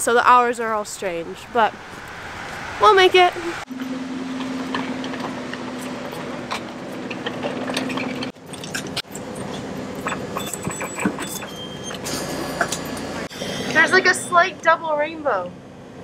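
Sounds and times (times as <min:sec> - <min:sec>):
bus idling hum: 0:00.0 - 0:16.0
clatter inside bus: 0:04.3 - 0:14.0
luggage wheels rattling: 0:04.4 - 0:13.3.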